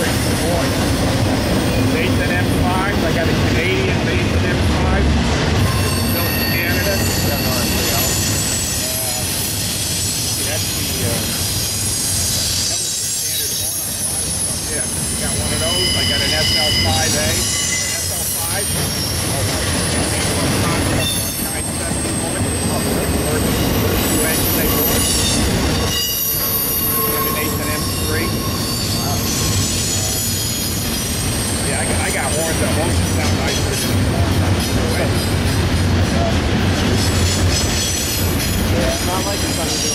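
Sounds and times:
train wheels rumbling on rails: 0:00.0 - 0:39.9
high wheel squeal: 0:05.6 - 0:35.6, 0:36.9 - 0:39.9.

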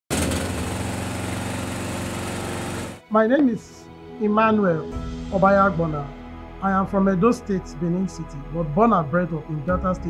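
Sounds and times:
generator engine running: 0:00.1 - 0:03.0.

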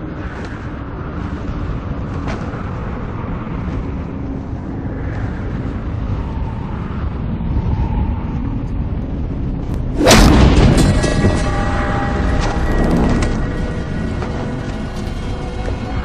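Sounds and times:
dark low rumbling drone: 0:00.0 - 0:16.0.

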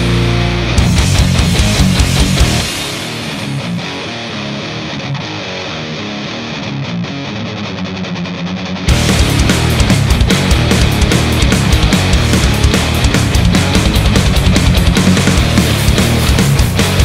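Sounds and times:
heavy metal rock music: 0:00.0 - 0:17.0.

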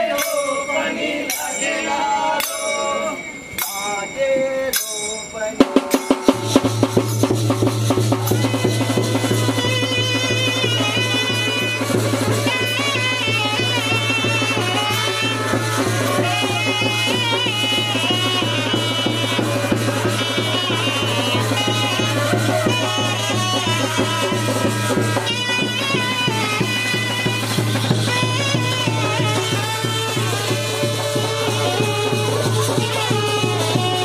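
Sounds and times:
drums beating fast rhythm: 0:03.6 - 0:34.0
saxophone-like ornamented melody: 0:05.9 - 0:34.0.

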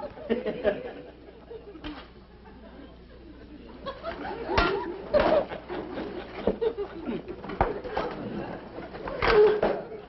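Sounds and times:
audience laughing: 0:00.0 - 0:10.0.

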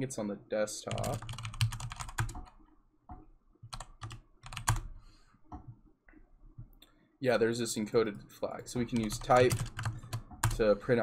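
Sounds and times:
computer keyboard typing: 0:00.9 - 0:02.6, 0:03.7 - 0:04.9, 0:08.8 - 0:10.6.

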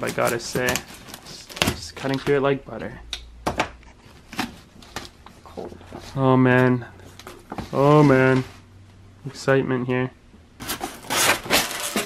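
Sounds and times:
foam lid scraping foam box: 0:10.6 - 0:12.0.

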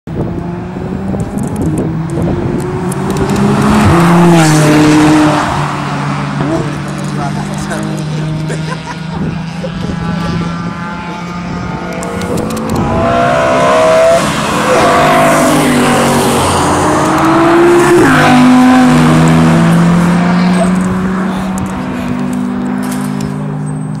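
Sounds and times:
race car engines accelerating: 0:00.1 - 0:24.0
race car passing by: 0:02.4 - 0:23.9.

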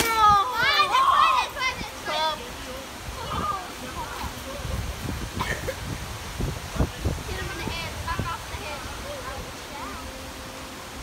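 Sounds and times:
children yelling and cheering: 0:00.0 - 0:04.9.

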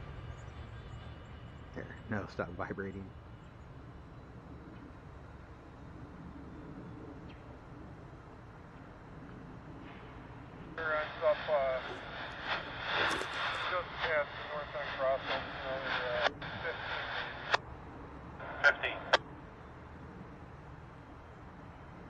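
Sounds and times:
diesel locomotive rumble: 0:00.0 - 0:04.4
radio scanner speech: 0:01.8 - 0:03.1, 0:10.8 - 0:17.6, 0:18.4 - 0:19.2.

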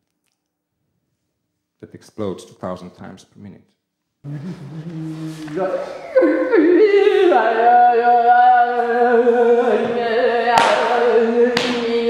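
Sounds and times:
man narrating: 0:01.8 - 0:03.7.

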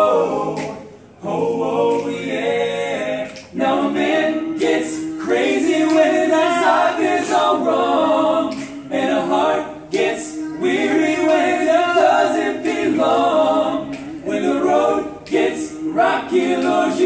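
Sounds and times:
men singing a cappella: 0:00.0 - 0:17.0.

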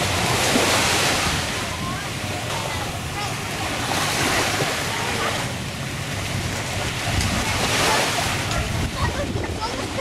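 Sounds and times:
small waves washing onto sand: 0:00.0 - 0:10.0
wind on microphone: 0:00.0 - 0:10.0.

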